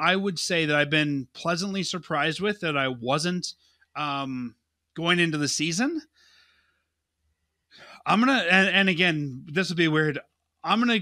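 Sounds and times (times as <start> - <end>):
quick inhale: 6.1 - 6.9, 7.8 - 8.1
soft breath into microphone: 6.1 - 7.0.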